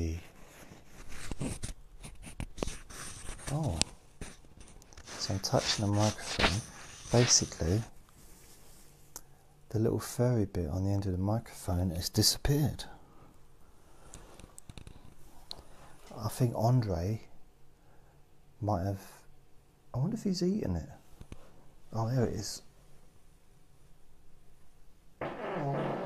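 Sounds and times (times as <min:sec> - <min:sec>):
microphone handling noise: 0:05.0 - 0:07.9, 0:25.2 - 0:26.0.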